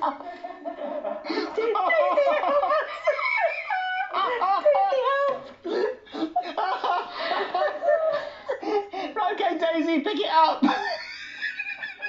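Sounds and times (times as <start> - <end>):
woman laughing hard: 0.0 - 9.0, 10.6 - 12.0.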